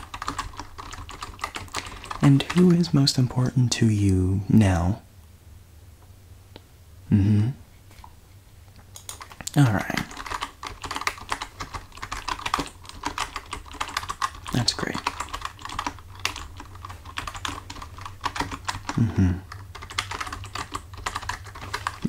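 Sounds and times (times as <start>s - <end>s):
typing on computer keyboard: 0.0s - 3.0s, 9.0s - 22.0s.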